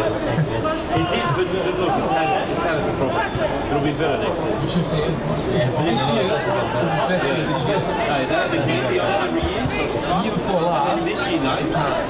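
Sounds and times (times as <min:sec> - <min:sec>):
people talking over one another: 0:00.0 - 0:12.0.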